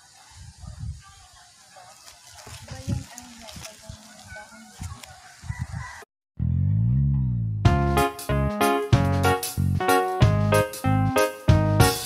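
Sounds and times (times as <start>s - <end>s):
faint outdoor yard ambience: 0.0s - 6.0s.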